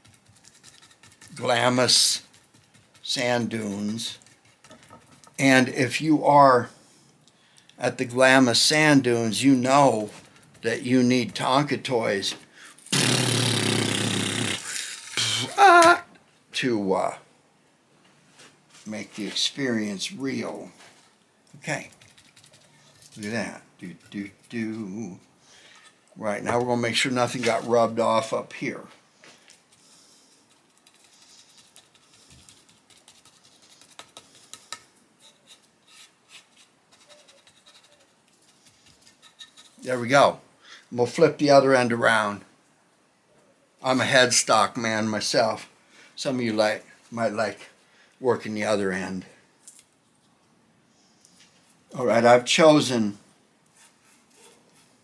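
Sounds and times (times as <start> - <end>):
brush scratching on wood: 0.0 - 5.7, 9.1 - 11.8, 20.8 - 24.9, 30.4 - 39.8
man making mouth engine noise: 12.9 - 16.0.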